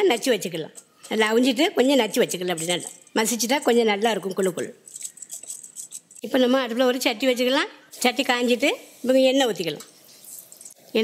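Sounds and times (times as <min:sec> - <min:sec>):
woman speaking: 0:00.0 - 0:04.8, 0:06.2 - 0:09.9.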